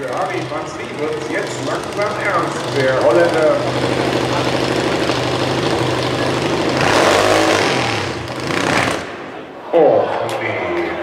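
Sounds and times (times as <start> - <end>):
motorcycle engine idling and revving: 0.0 - 9.4.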